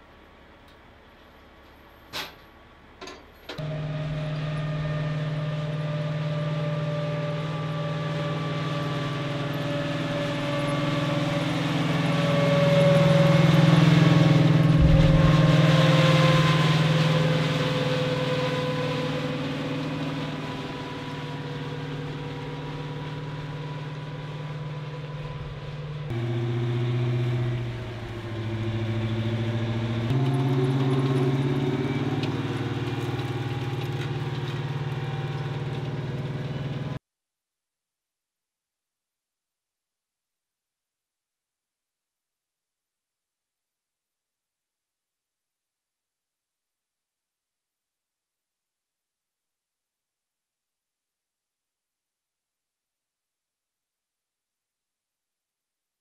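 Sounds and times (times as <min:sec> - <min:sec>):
tracked vehicle engine whining: 0:03.1 - 0:37.0.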